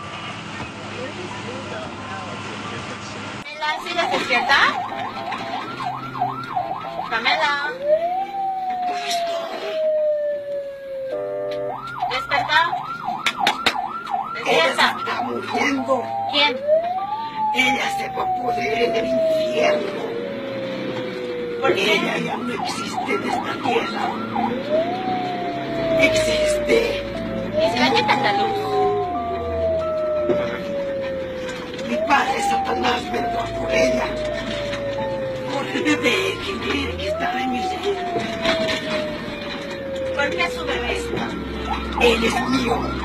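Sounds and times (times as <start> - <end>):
people talking: 0.5 - 5.8, 7.1 - 9.8, 12.0 - 12.8, 14.3 - 20.3, 21.6 - 24.2, 25.9 - 31.1, 31.8 - 39.1, 40.0 - 43.0
ambulance siren wail: 3.4 - 43.0
ambulance siren yelp: 3.4 - 43.0.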